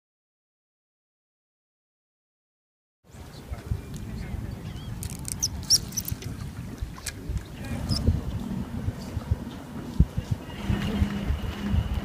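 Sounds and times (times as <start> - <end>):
wind buffeting microphone: 3.1 - 12.0.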